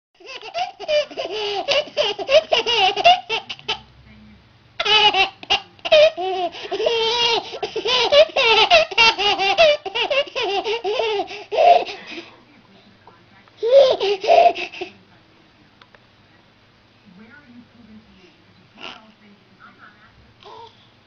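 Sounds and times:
baby laughing: 0.2s - 3.8s, 4.8s - 12.3s, 13.6s - 15.0s.

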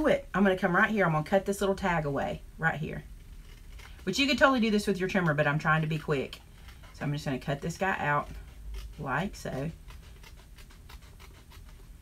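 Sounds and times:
scissors snipping paper: 5.1s - 12.0s.

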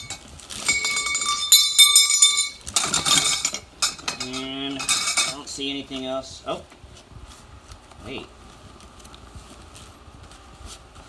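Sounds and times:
plastic hangers clattering: 0.0s - 5.5s.

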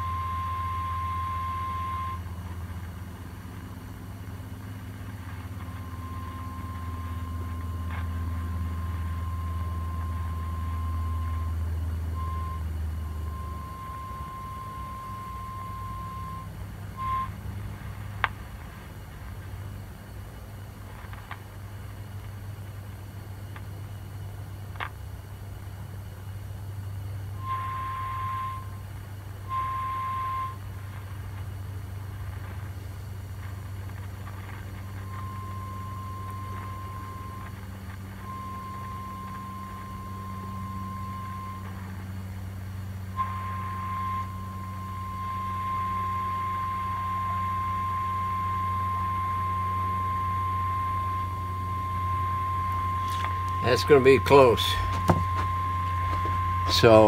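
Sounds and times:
steady radio test tone: 0.0s - 17.5s, 27.4s - 28.8s, 29.4s - 31.3s, 33.5s - 42.1s, 42.9s - 57.0s
constant low hum: 0.0s - 57.0s.

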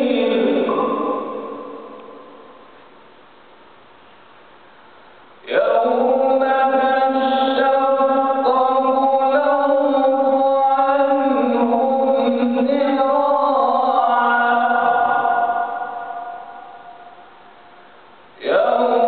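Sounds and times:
man chanting recitation: 0.0s - 2.2s, 5.4s - 16.8s, 18.4s - 19.0s.

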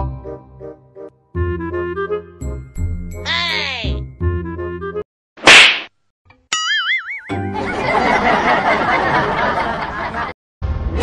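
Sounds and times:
loud slap sound effect: 5.4s - 6.0s
jingly music: 6.6s - 8.2s.

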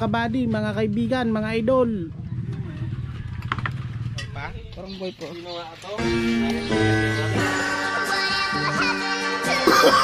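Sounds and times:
person laughing: 9.5s - 10.0s.

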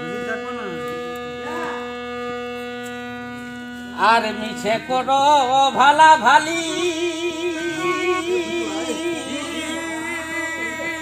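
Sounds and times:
harmonium sustained chord: 0.0s - 11.0s
faint voice: 1.4s - 2.0s.

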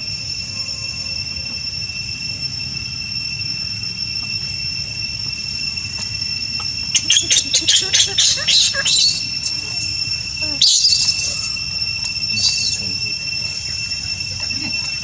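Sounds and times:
insects droning: 0.0s - 15.0s
baby monkey screaming: 6.6s - 15.0s.

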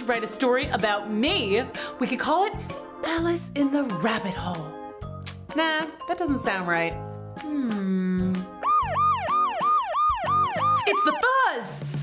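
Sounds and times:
police siren yelp: 8.6s - 11.3s.

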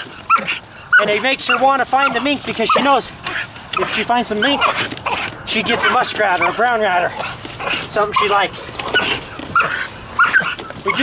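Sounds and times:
puppy whining and yipping: 0.0s - 6.6s, 7.2s - 11.0s.

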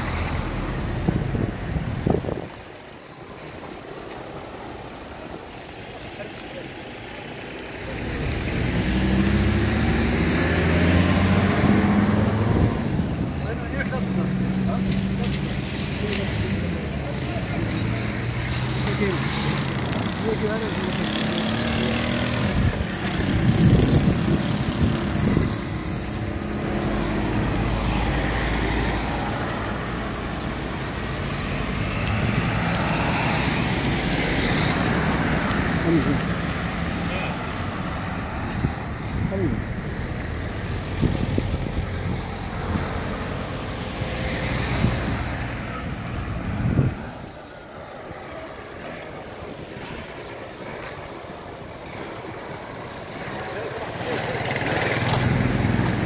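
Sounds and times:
vehicle engines running: 0.0s - 56.0s
people talking: 5.9s - 8.2s, 13.4s - 21.4s, 35.7s - 36.4s, 37.0s - 37.5s, 39.2s - 39.6s, 53.2s - 55.4s.

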